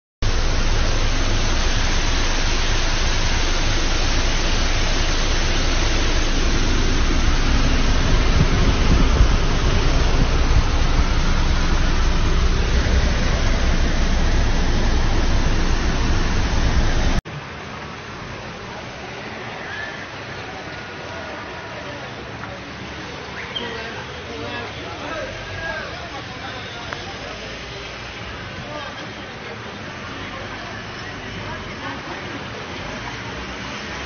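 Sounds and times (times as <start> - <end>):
heavy rain downpour: 0.2 - 34.0
steady hiss: 0.2 - 34.0.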